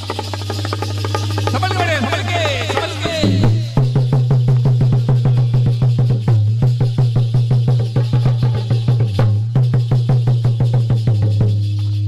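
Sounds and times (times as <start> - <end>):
fast hand drum rhythm: 0.0 - 11.7.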